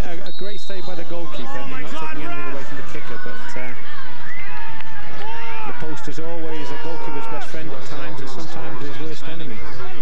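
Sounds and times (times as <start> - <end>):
sports commentator exclaiming: 1.2 - 3.8, 5.2 - 7.6.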